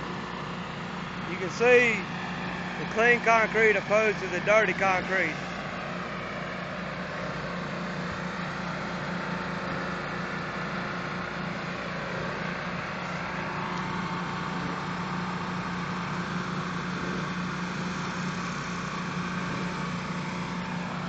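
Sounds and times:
pressure washer drone: 0.0s - 21.0s.

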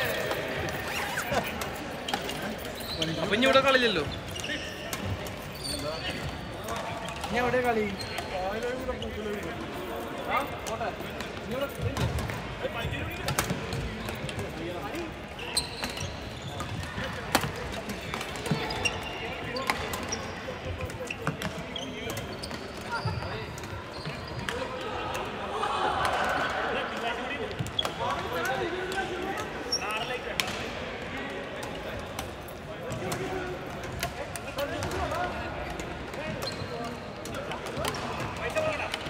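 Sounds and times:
players' voices: 0.0s - 39.0s
shoes squeaking on hardwood: 0.1s - 9.2s, 15.4s - 17.0s.

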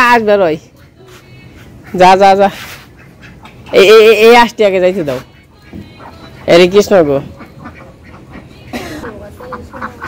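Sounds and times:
soft duck quacks: 1.0s - 3.9s, 7.2s - 10.0s.

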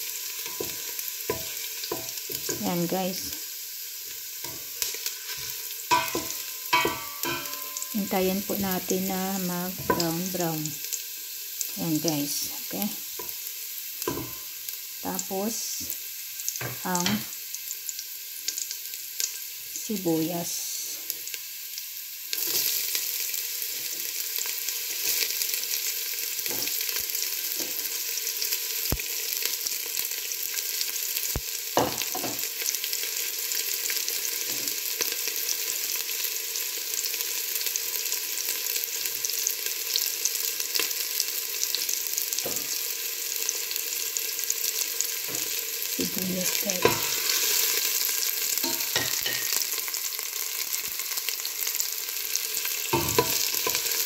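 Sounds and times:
onion sizzling in hot oil: 0.0s - 54.0s.

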